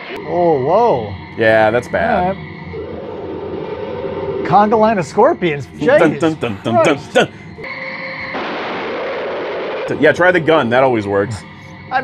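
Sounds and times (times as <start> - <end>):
loud steady hissing: 0.0 - 7.6
steady tone: 0.0 - 12.0
person speaking: 0.4 - 2.4, 5.4 - 7.4.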